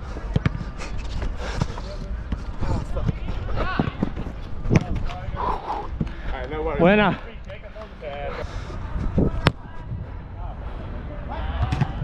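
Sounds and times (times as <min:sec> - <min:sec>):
ball thuds: 0:03.0 - 0:05.1
wind rumble on camera: 0:08.8 - 0:10.3
players shouting: 0:11.2 - 0:12.0.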